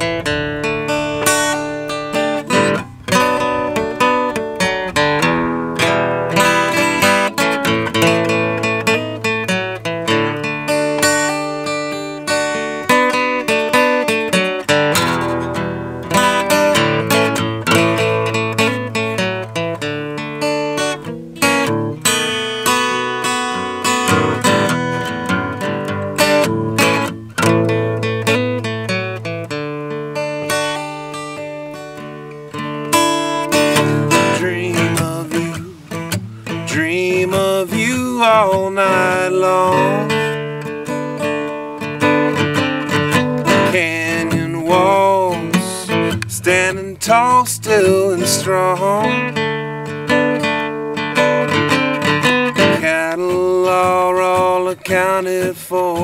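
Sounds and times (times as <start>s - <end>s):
acoustic guitar picking: 0.0s - 56.0s
person singing: 33.6s - 40.4s, 43.5s - 49.4s, 52.6s - 56.0s.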